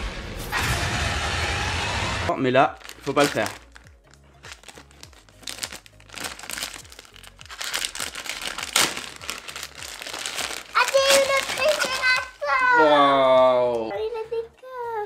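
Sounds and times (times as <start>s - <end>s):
plastic sachet crinkling: 2.8s - 13.9s
child calling out: 10.8s - 13.2s.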